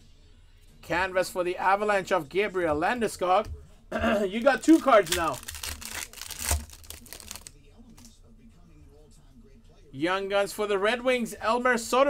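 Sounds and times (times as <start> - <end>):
plastic wrapper crinkling and tearing: 4.4 - 8.1.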